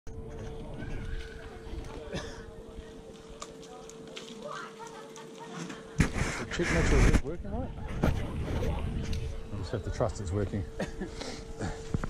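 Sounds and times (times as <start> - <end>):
faint voices: 0.1 - 12.0
steady low hum: 0.1 - 12.0
wind rumble on microphone: 6.0 - 9.8.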